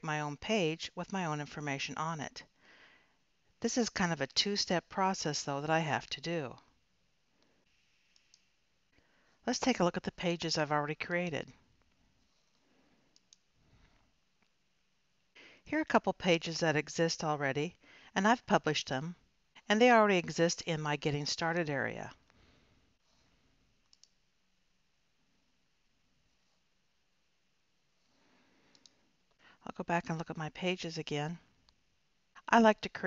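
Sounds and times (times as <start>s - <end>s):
faint computer mouse clicks: 8.1s - 8.5s, 11.8s - 13.5s, 23.8s - 24.2s, 28.7s - 29.0s.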